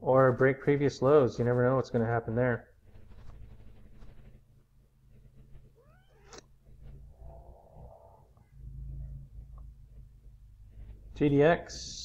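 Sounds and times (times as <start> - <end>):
animal call with gliding pitch: 7.1 - 8.4.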